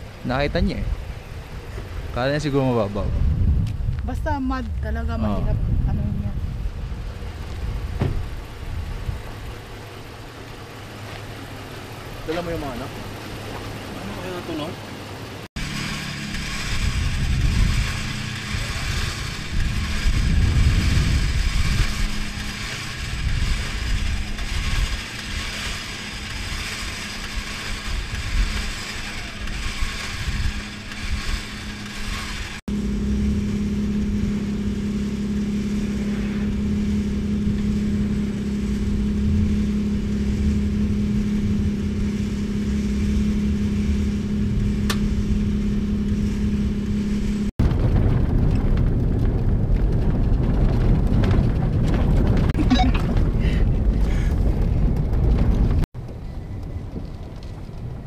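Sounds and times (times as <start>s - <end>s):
uneven low rumble: 0.0s - 10.2s, 15.7s - 28.7s, 32.0s - 58.0s
steady mechanical hum: 0.0s - 58.0s.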